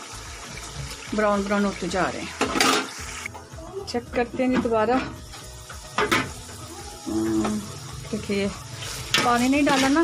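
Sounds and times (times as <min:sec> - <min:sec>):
chickpeas sizzling in a pot: 0:00.0 - 0:10.0.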